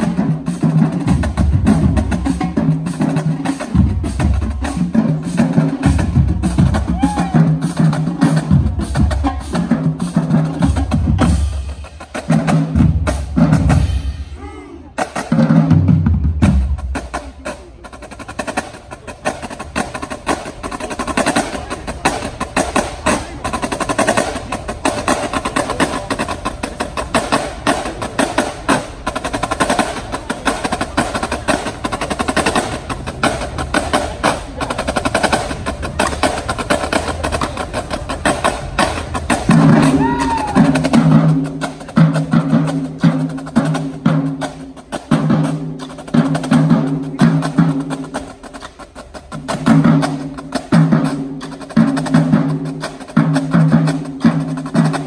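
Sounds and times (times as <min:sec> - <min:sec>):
deep drums rhythmic pattern: 0:00.0 - 0:55.0.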